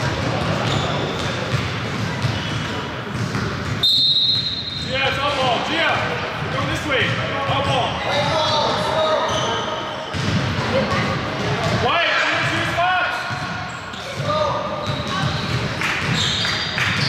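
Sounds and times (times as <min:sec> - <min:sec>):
basketball bouncing on hardwood floor: 0:03.1 - 0:03.8.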